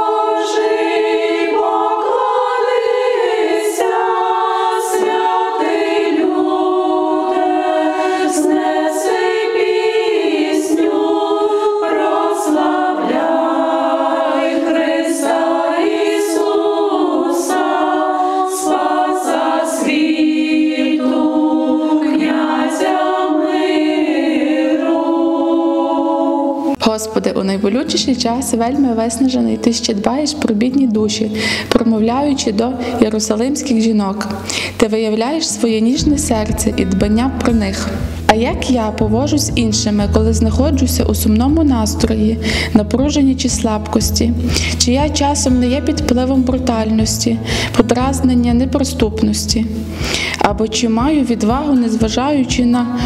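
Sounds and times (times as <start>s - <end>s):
choir singing unaccompanied: 0.0s - 26.9s.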